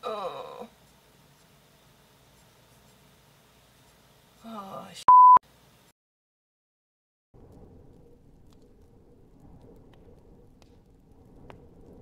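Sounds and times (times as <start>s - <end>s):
woman speaking: 4.4s - 5.1s
censor bleep: 5.1s - 5.4s.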